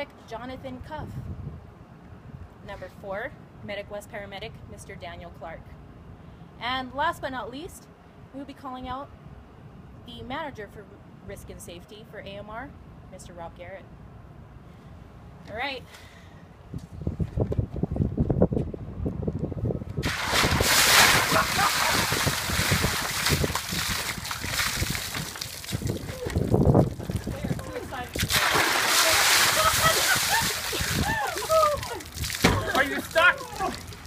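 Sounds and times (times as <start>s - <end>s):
water splashing in plastic barrel: 20.0s - 34.0s.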